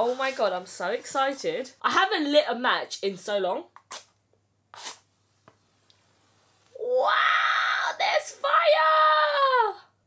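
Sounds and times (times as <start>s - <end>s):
match scraping on box: 3.8s - 5.1s.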